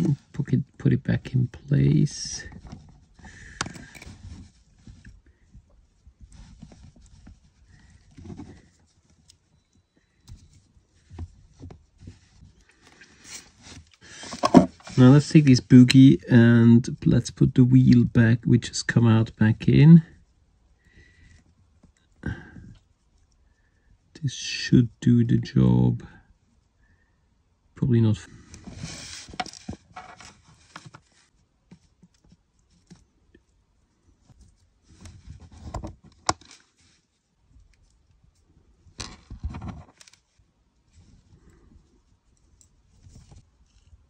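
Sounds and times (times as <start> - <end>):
loud handling noise: 13.7 - 15.1.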